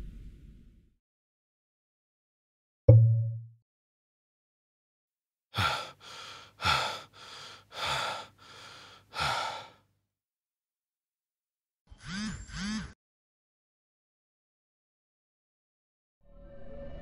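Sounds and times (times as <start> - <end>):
man breathing hard: 5.5 - 9.9.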